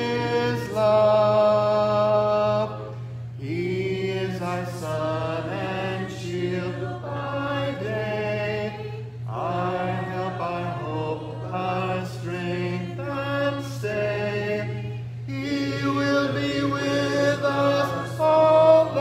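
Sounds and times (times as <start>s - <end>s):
congregation singing a hymn: 0.0s - 19.0s
steady low hum: 0.0s - 19.0s.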